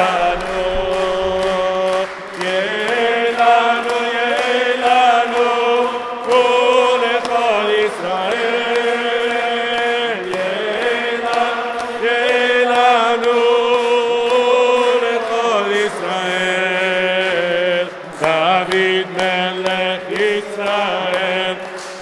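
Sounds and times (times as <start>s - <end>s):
person chanting a liturgical melody: 0.0s - 22.0s.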